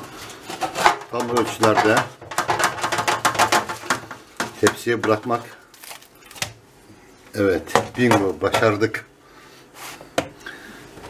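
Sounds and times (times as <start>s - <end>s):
pastry sheet crackling and scraping: 0.0s - 6.4s.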